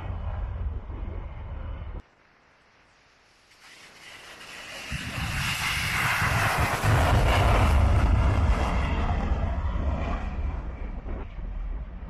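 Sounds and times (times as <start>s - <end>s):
wind buffeting microphone: 0.0s - 2.0s, 4.0s - 12.0s
fighter jet taking off: 3.3s - 12.0s.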